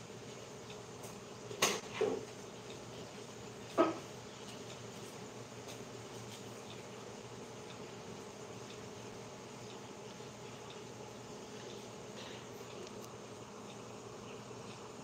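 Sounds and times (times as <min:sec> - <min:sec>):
low buzzing hum: 0:00.0 - 0:15.0.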